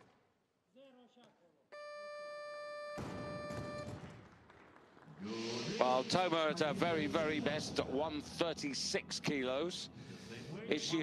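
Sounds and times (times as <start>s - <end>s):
electronic buzzer tone: 1.8s - 4.0s.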